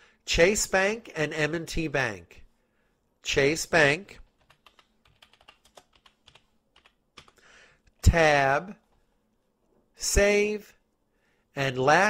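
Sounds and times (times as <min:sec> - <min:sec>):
typing on computer keyboard: 0:04.3 - 0:07.4.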